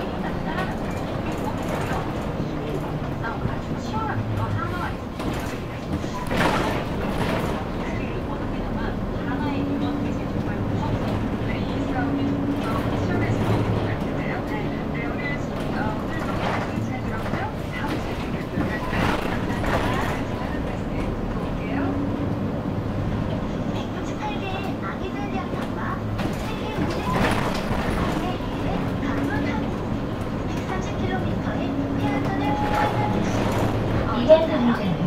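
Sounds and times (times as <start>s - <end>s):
indistinct talk: 0.0s - 22.2s, 23.2s - 35.0s
bus engine and road rumble: 0.0s - 35.0s.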